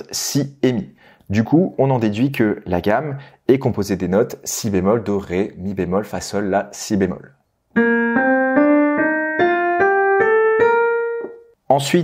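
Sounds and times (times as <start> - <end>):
piano playing a rising scale: 7.7 - 11.6.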